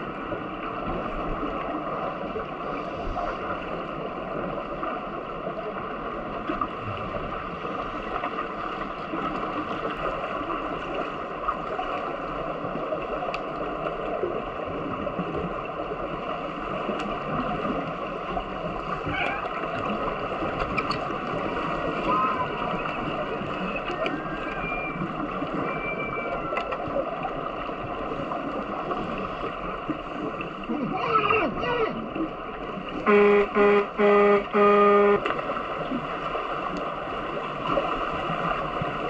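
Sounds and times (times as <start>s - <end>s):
underwater pool noise: 0.0s - 39.0s
faint clicks: 13.3s - 13.6s, 26.3s - 27.3s.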